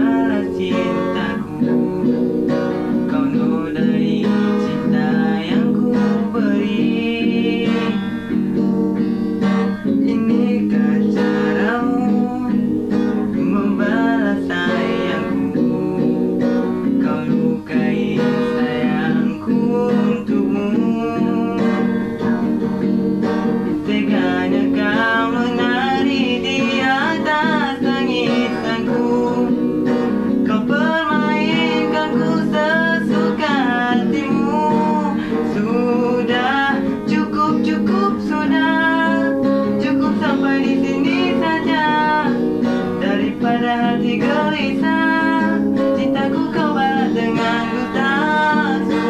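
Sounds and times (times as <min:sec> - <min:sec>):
acoustic guitar strumming: 0:00.0 - 0:49.0
young man singing: 0:00.0 - 0:49.0.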